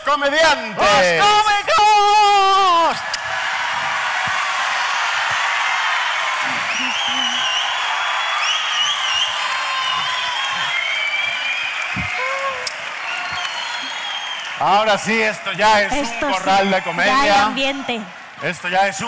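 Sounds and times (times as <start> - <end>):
high shouts and whoops: 0.8 - 18.1
audience applauding and cheering: 0.8 - 19.0.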